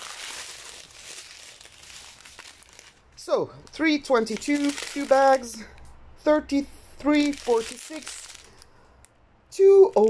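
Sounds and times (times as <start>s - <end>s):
plastic bags crinkling: 0.0s - 3.2s, 4.2s - 5.7s, 7.1s - 8.8s.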